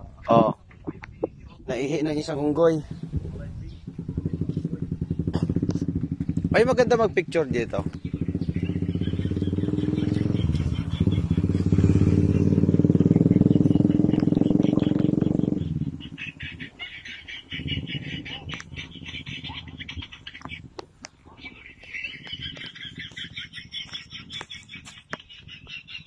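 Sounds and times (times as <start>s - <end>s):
motor engine humming: 1.0s - 25.9s
rapid high chirping: 1.4s - 26.0s.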